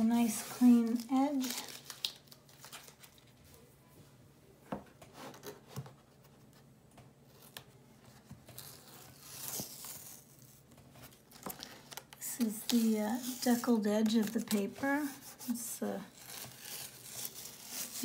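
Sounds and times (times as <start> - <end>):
faint tearing crackle: 0.5 - 3.4, 8.5 - 18.0
tape peeling off paper: 8.5 - 14.6, 16.1 - 18.0.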